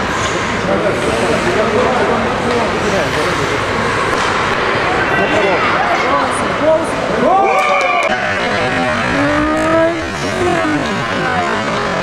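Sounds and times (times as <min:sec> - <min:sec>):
echoing indoor din: 0:01.4 - 0:12.0
overlapping voices calling out: 0:07.5 - 0:12.0.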